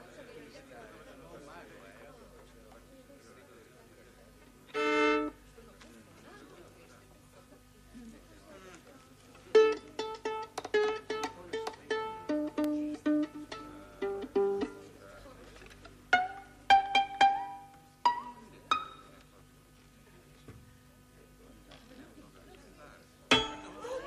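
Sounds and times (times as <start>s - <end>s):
violin played pizzicato: 4.7s - 5.4s, 9.5s - 14.9s, 16.1s - 19.1s.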